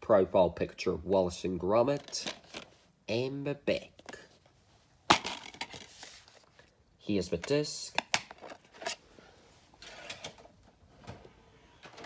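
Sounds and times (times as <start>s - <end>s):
plastic case handling noise: 1.9s - 2.8s, 5.1s - 6.7s, 7.4s - 9.0s.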